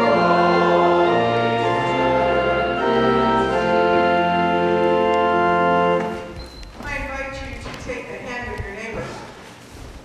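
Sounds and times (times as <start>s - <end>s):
church organ chord: 0.0s - 6.4s
person speaking in reverberant hall: 6.8s - 9.5s.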